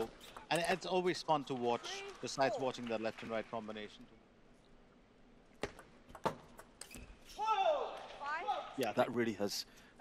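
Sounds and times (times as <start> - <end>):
person shouting: 7.4 - 8.6.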